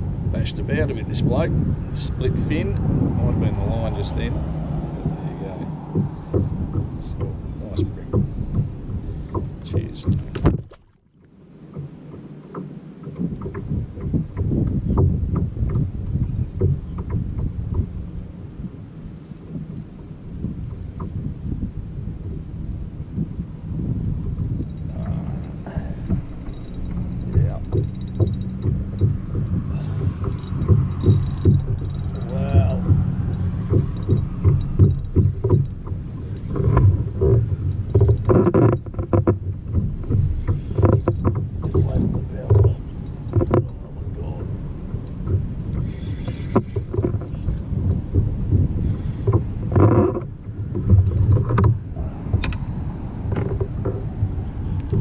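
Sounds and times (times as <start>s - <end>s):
steady low rumble: 0.0s - 55.0s
clicks and knocks of fishing gear: 9.3s - 15.9s, 24.4s - 43.8s, 44.4s - 54.1s.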